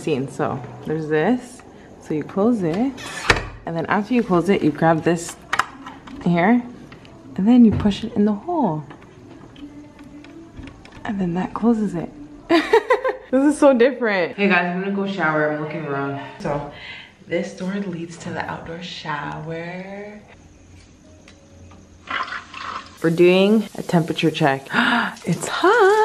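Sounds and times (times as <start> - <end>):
shower spraying water: 22.0 - 26.0.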